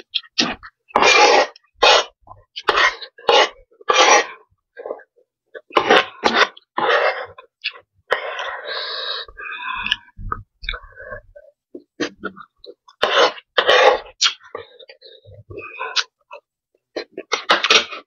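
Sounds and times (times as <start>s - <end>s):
chewing: 0.0s - 11.2s, 11.8s - 18.0s
wet slurping of noodles: 0.4s - 5.0s.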